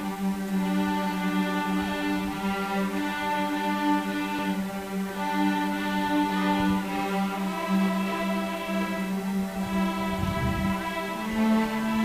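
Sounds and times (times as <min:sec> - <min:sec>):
string orchestra slow chord: 0:00.0 - 0:12.0.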